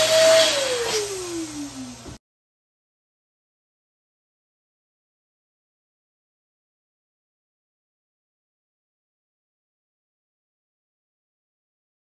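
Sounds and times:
balloon inflator motor whine: 0:00.0 - 0:02.2.

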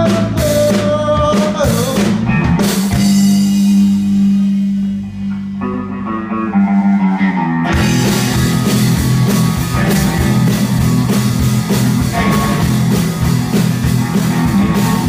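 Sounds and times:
bass guitar low notes: 0:00.0 - 0:15.0
drum kit: 0:00.0 - 0:15.0
electric guitar: 0:00.0 - 0:15.0.

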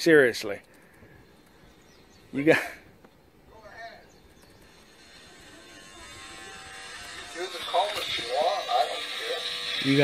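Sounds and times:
electric hair clippers buzzing: 0:04.6 - 0:10.0.

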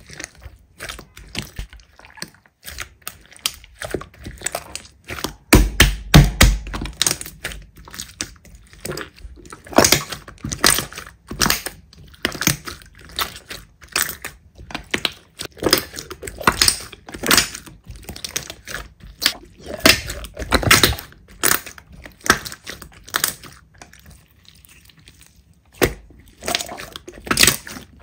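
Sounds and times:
slime with foam beads squelching: 0:00.0 - 0:28.0.

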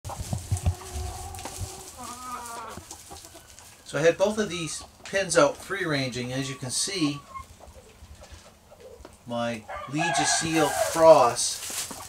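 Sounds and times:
chickens clucking and calling: 0:00.1 - 0:12.0.

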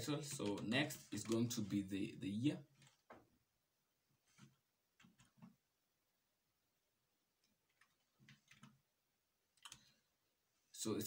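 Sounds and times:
keyboard keys typing: 0:07.7 - 0:08.8, 0:09.6 - 0:09.9.

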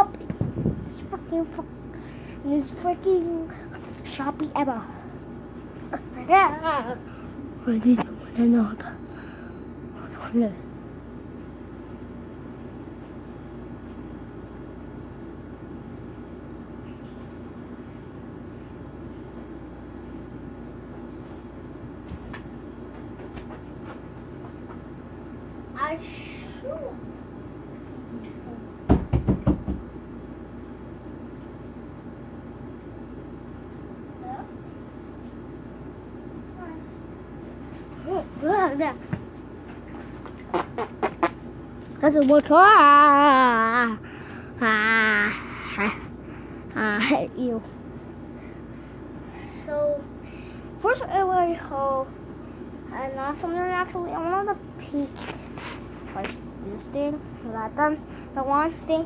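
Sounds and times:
air conditioner humming: 0:00.0 - 0:59.0.

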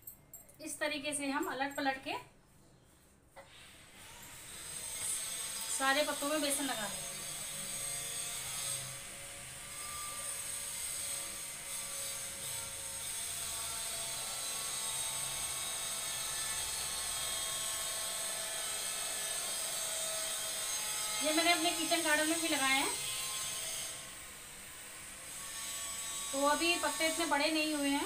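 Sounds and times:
small motor whining: 0:03.4 - 0:28.0.

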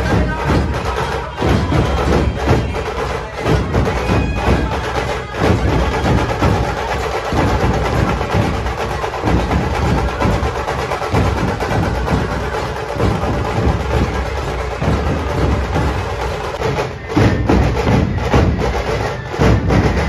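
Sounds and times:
barrel drums beaten with sticks: 0:00.0 - 0:20.0.

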